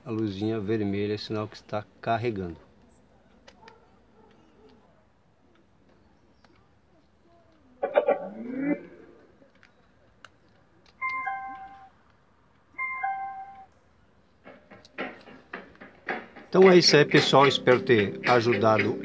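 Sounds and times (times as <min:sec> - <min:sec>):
speaker playback: 0:16.5 - 0:19.0.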